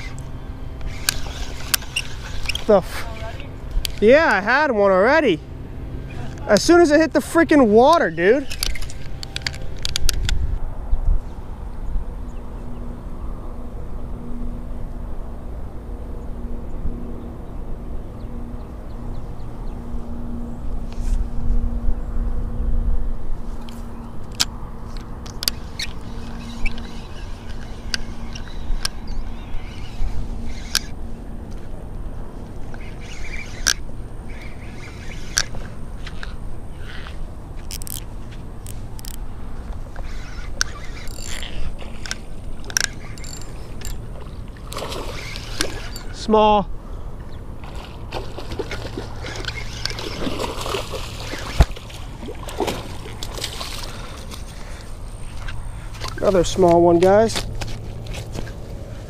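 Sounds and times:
spinning reel cranking hum: 0.0 - 10.4, 24.9 - 46.6, 47.5 - 57.2
wind rumble on microphone: 7.7 - 59.0
scattered clicks: 40.0 - 44.0.

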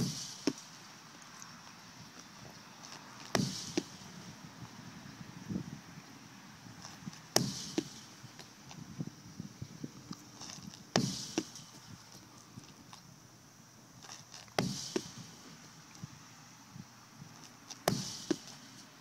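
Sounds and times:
medicine ball hitting concrete wall: 0.0 - 0.7, 3.3 - 4.2, 7.3 - 8.1, 10.9 - 11.7, 14.6 - 15.3, 17.8 - 18.6.

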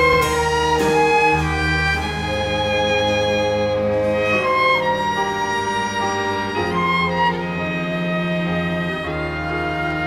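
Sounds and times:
string orchestra playing: 0.0 - 10.0.

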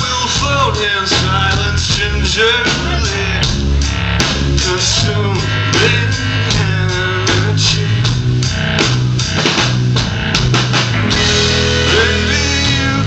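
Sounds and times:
bass line: 0.0 - 13.0
drum kit beat: 0.0 - 13.0
electric guitar: 0.0 - 13.0.

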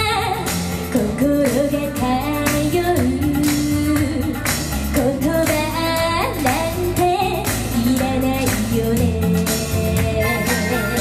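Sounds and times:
amplified pop backing music: 0.0 - 11.0
woman singing into a microphone: 0.0 - 11.0.

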